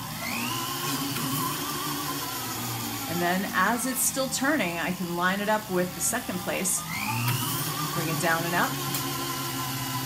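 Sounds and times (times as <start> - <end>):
drill press motor whine: 0.0 - 10.0
drill bit cutting sheet metal: 3.1 - 10.0.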